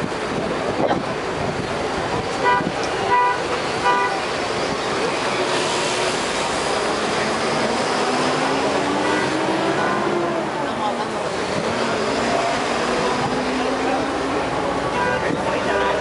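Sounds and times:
roadside traffic noise: 0.0 - 16.0
vehicle horn toots: 2.4 - 4.3, 9.0 - 9.6.

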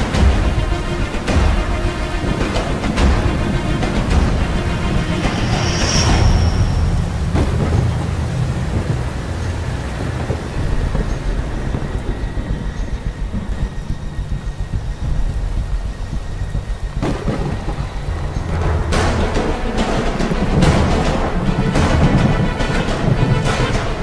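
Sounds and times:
low thunder rumble: 0.0 - 24.0
steady rain hiss: 0.0 - 24.0.

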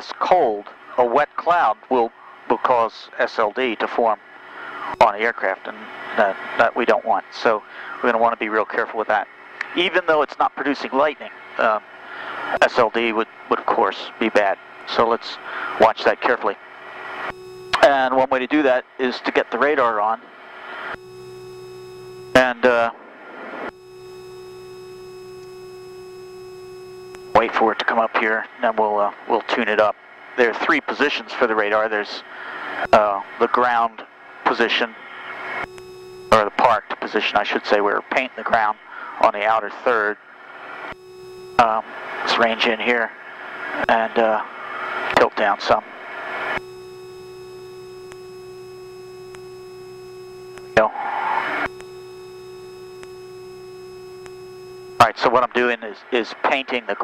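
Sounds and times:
aircraft cockpit hum: 0.1 - 57.0
airplane cabin drone: 4.0 - 6.9, 11.3 - 30.7, 31.3 - 55.2.

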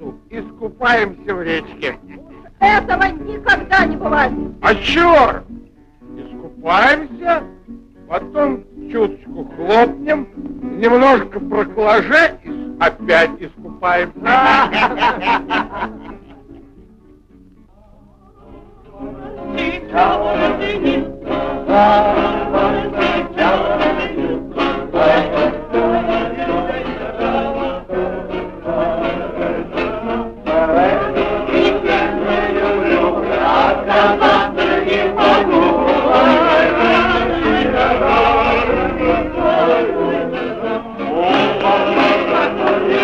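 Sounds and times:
music: 0.0 - 43.0
group of voices singing: 14.1 - 16.1, 18.2 - 43.0.

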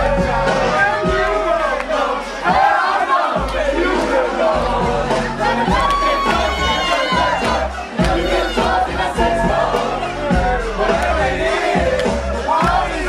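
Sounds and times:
dance music with deep bass: 0.0 - 2.8, 3.4 - 13.0
crowd shouting and cheering: 0.0 - 13.0.

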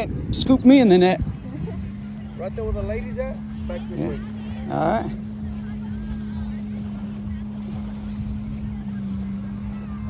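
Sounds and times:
steady low hum: 0.0 - 10.0
wind rumble on microphone: 0.0 - 10.0.

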